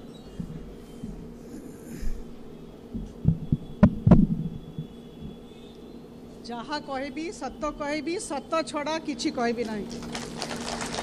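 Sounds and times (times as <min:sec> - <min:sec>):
faint steady hum: 0:00.0 - 0:11.0
dull thumps on microphone: 0:03.0 - 0:05.4
sharp knocks: 0:03.0 - 0:05.4.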